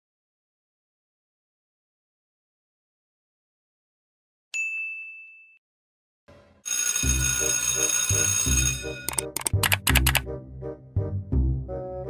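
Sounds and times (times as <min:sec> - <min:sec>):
bell-like ding: 0:04.6 - 0:05.6.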